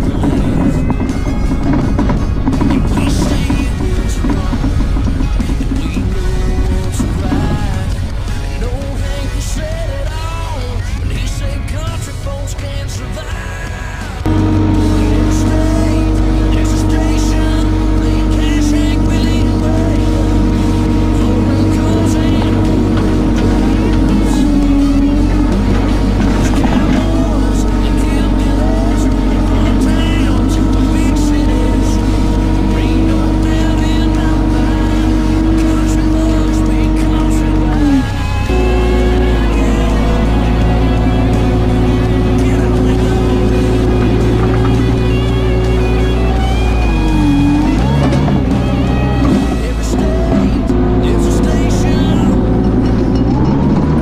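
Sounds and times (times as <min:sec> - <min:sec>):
background music with singing: 0:00.0 - 0:54.0
loader engine running: 0:00.0 - 0:54.0.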